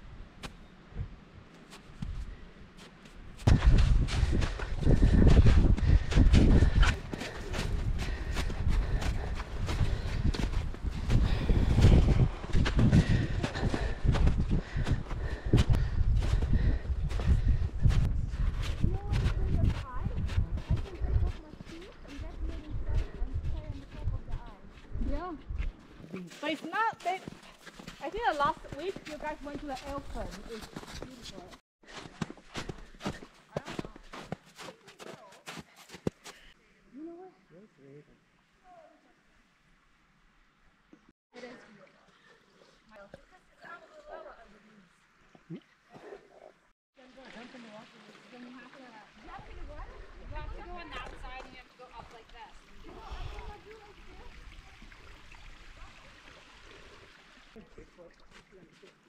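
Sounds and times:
trekking poles planted in snow: 1.4 - 36.6
boots crunching in snow: 23.6 - 36.6.

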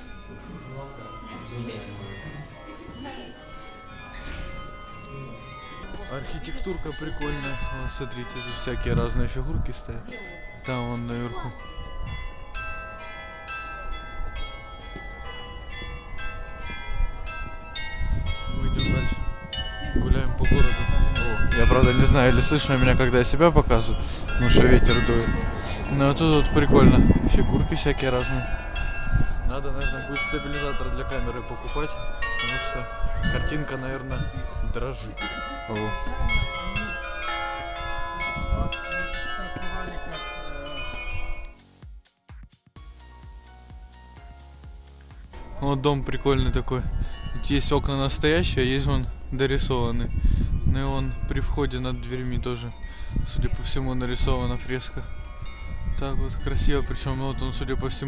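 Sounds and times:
church bells chiming a tune: 0.0 - 41.6, 42.8 - 58.0
wind rumble on microphone: 15.7 - 35.2, 35.8 - 40.0, 45.4 - 58.0.

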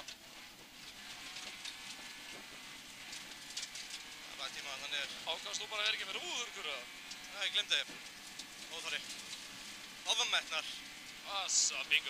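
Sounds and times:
car driving on gravel: 0.0 - 12.0.

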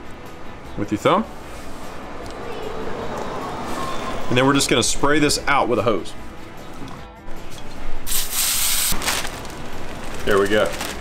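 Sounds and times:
hose nozzle spraying water: 8.1 - 9.0.

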